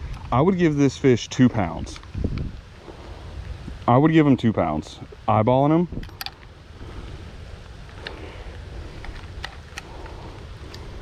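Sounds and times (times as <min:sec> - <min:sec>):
low wind rumble on microphone: 0:00.0 - 0:11.0
faint handling clicks: 0:07.8 - 0:10.9.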